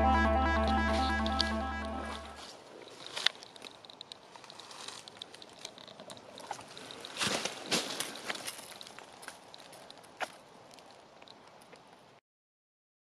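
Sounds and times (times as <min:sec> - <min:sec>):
footsteps rustling dry leaves: 0:00.8 - 0:05.6, 0:06.7 - 0:09.9
twigs snapping: 0:02.8 - 0:12.0.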